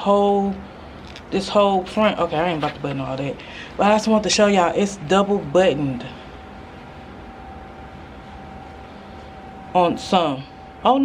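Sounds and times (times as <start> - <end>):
faint steady whine: 0.0 - 11.0
low hum: 0.0 - 11.0.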